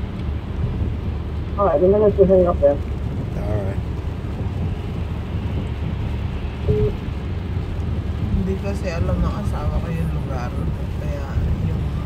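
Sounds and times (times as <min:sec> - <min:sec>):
car engine and road noise: 0:00.0 - 0:12.0
single tone: 0:06.7 - 0:07.0.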